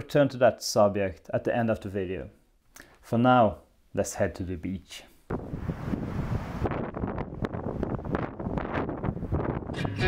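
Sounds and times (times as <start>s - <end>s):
wind buffeting microphone: 5.3s - 10.0s.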